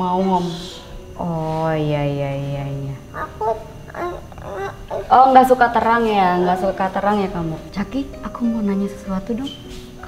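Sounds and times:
woman making broken vocal sounds: 0:02.8 - 0:06.6.

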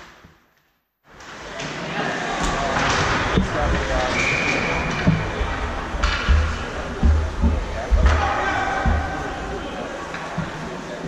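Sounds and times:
voices: 0:01.4 - 0:11.0
hockey sticks and puck knocking: 0:02.8 - 0:10.7.

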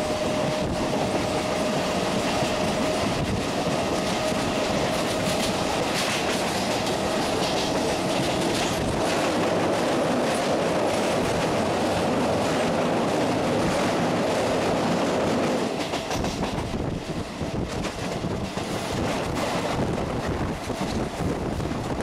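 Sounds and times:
clickety-clack over rail joints: 0:00.0 - 0:22.0
train hum: 0:00.0 - 0:22.0
train wheels rushing on rail: 0:00.0 - 0:22.0.

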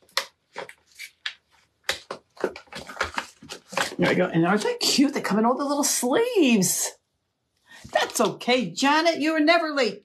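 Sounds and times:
plastic sleeve crinkling: 0:00.0 - 0:05.0.

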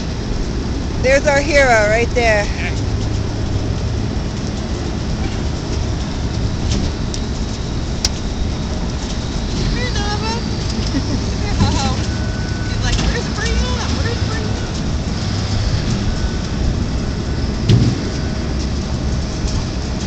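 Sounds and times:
loud rushing noise with low hum: 0:00.0 - 0:20.0.

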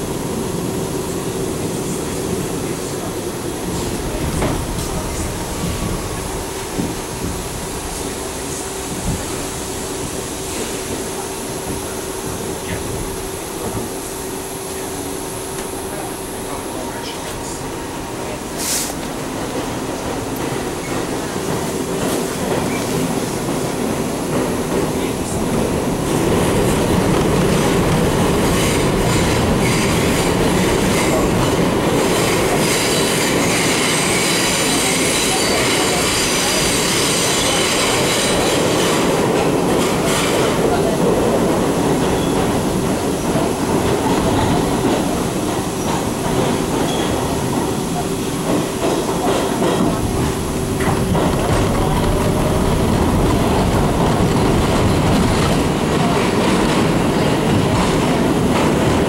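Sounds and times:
subway wheels rumbling on rail: 0:00.0 - 0:59.0.

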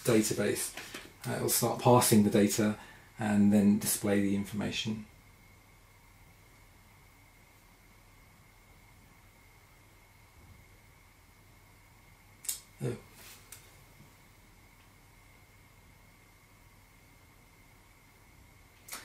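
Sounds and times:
faint high-pitched whine: 0:00.0 - 0:19.0.

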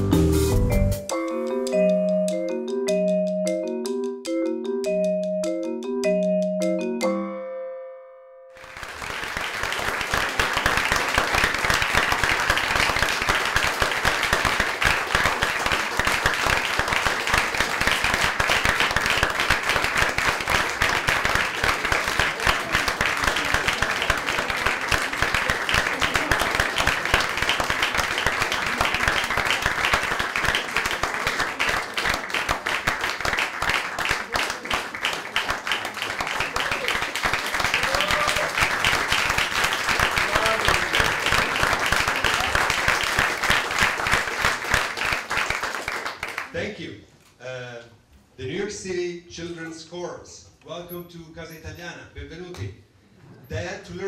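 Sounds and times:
audience applauding: 0:08.6 - 0:46.6.

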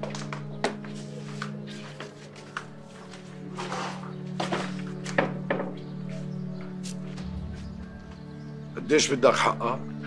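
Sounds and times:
background music with low drone: 0:00.0 - 0:10.0.

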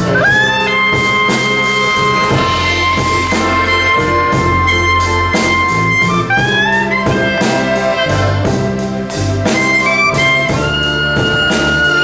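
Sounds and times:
blues band playing: 0:00.0 - 0:12.0
clarinet long high note: 0:00.0 - 0:12.0.

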